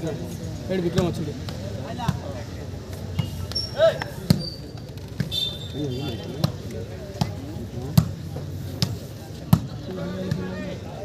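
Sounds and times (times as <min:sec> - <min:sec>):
murmur of crowd voices: 0:00.0 - 0:11.0
hand slapping volleyball: 0:06.4 - 0:07.4.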